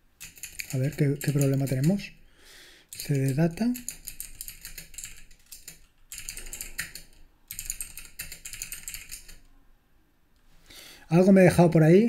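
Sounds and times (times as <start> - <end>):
keyboard typing clicks: 0.2 - 1.9, 2.9 - 9.4.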